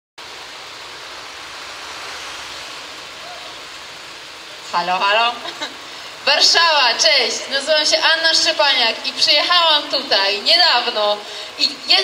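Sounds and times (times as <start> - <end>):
distant traffic: 0.2 - 12.0
general street sound: 0.2 - 12.0.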